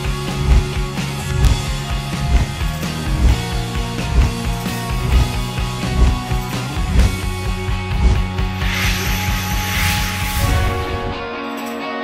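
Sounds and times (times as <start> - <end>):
rising whoosh: 8.0 - 11.4.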